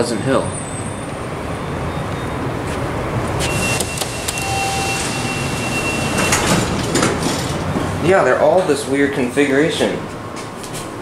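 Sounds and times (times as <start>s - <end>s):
loud steady rushing noise: 1.0s - 10.2s
elevator doors sliding shut: 3.2s - 8.2s
steady high beep: 3.4s - 6.8s.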